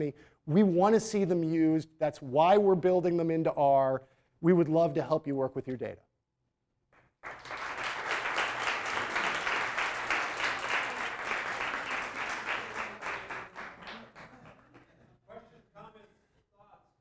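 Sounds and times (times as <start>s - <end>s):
audience applauding: 7.2s - 15.0s.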